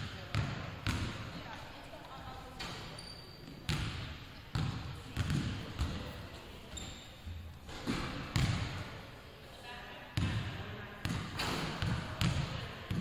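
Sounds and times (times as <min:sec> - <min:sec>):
basketballs bouncing on wood floor: 0:00.0 - 0:01.5, 0:03.7 - 0:06.1, 0:07.9 - 0:08.8, 0:11.0 - 0:13.0.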